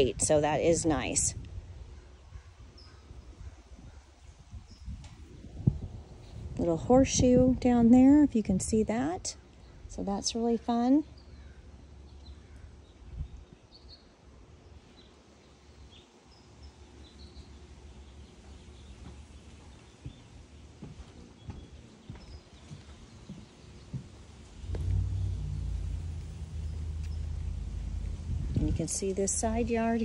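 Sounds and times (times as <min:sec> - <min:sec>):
wind rumble on microphone: 0:00.0 - 0:10.2, 0:12.5 - 0:13.7, 0:24.4 - 0:30.0.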